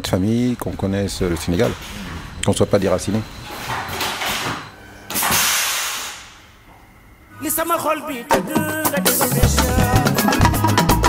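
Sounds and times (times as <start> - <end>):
burst of hissing noise: 5.1 - 6.4.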